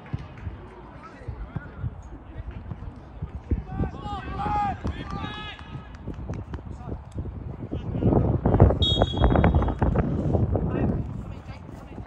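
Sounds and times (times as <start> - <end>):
referee's whistle blast: 8.8 - 9.8.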